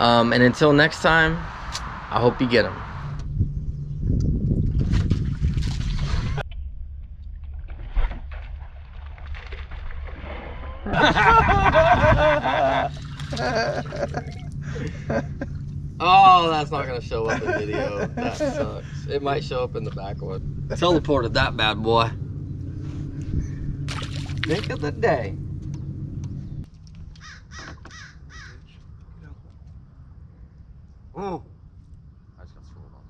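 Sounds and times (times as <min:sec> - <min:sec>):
water splashing: 0:04.7 - 0:06.4, 0:07.5 - 0:10.9, 0:12.6 - 0:14.6, 0:23.8 - 0:25.0
bird harsh calls: 0:27.2 - 0:28.8.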